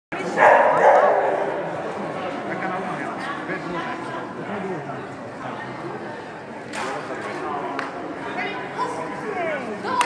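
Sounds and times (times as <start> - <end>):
people's voices in background: 0.1 - 10.0
dog barking: 0.3 - 1.6.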